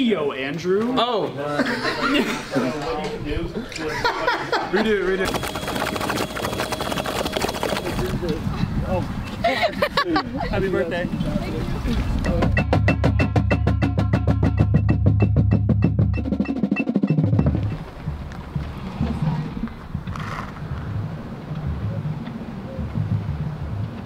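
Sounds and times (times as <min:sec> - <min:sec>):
drum corps percussion: 0:12.2 - 0:20.2.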